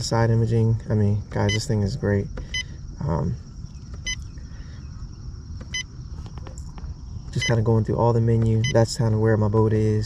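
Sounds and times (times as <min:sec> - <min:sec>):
steady low rumble: 0:00.0 - 0:10.0
short electronic beep: 0:07.4 - 0:07.6.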